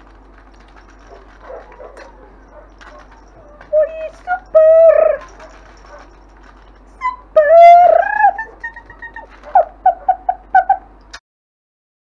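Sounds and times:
puppy whining and yelping: 1.0s - 6.2s, 6.9s - 10.9s.

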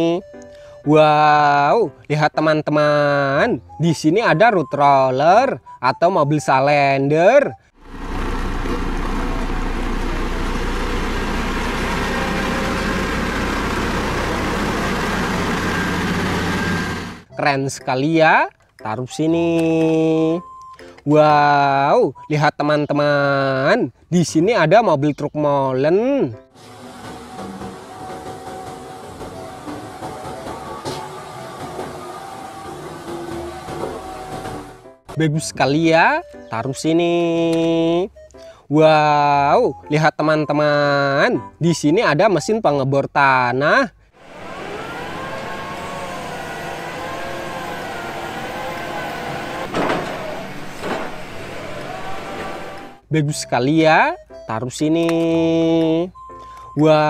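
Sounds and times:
traffic noise: 7.8s - 17.3s
wavering machine whine: 7.8s - 17.3s, 26.6s - 34.8s, 44.2s - 53.0s
diesel truck driving past: 7.8s - 17.4s, 26.3s - 35.1s, 44.1s - 53.1s.

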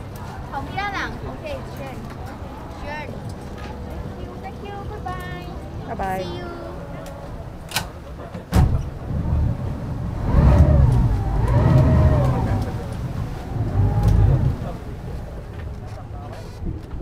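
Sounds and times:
speedboat engine rumbling: 0.0s - 17.0s.

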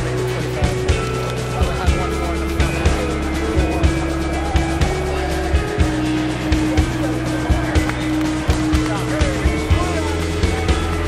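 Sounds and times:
music with heavy bass: 0.0s - 11.0s.

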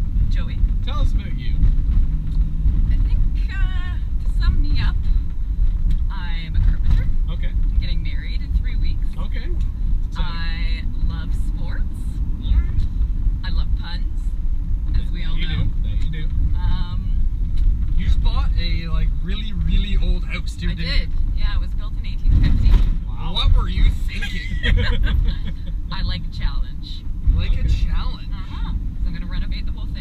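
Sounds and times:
road noise inside cab: 0.0s - 30.0s
truck engine drone: 0.0s - 30.0s.

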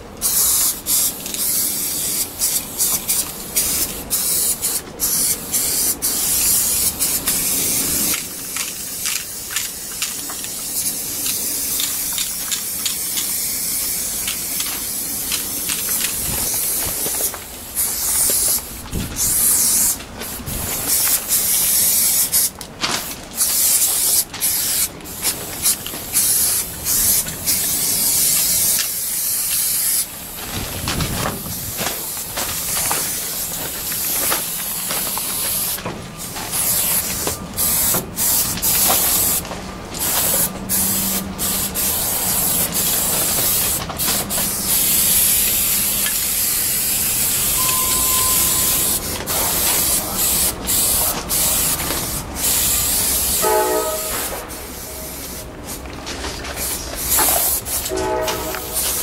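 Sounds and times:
spray paint cans spraying: 0.0s - 59.0s.

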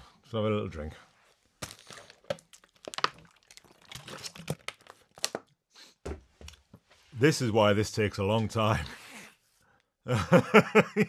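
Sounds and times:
drink container crinkling: 1.6s - 5.6s.

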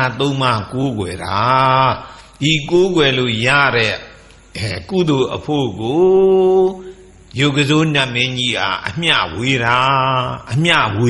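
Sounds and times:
man chanting sermon: 0.0s - 11.0s.

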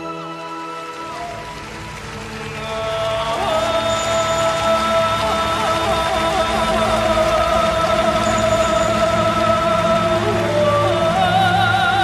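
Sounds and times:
orchestra playing: 0.0s - 12.0s
man singing high note: 2.5s - 12.0s.

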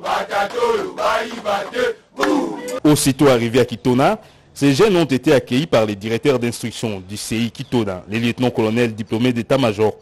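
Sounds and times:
young men chanting in unison: 0.0s - 2.8s.

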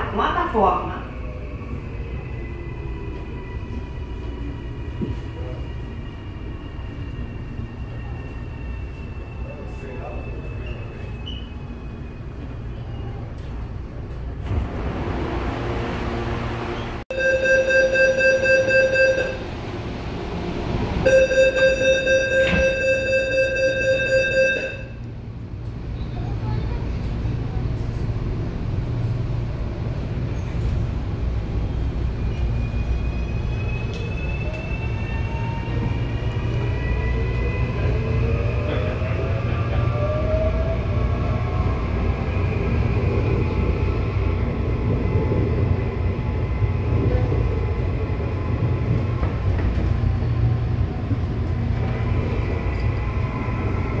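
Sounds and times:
train rumbling: 0.0s - 54.0s.

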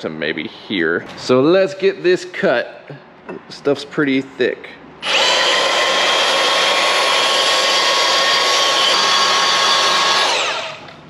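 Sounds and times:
band saw motor whine: 5.0s - 11.0s.

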